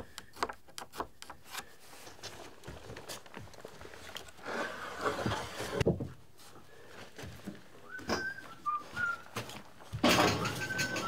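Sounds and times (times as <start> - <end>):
timber planks scraping: 1.3 - 5.8
short whistled notes: 7.9 - 9.2, 10.4 - 11.0.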